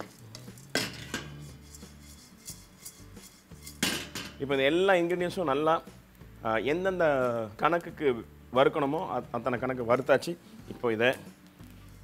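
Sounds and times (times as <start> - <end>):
wooden spatula scraping wok: 0.0 - 4.5, 11.7 - 12.0.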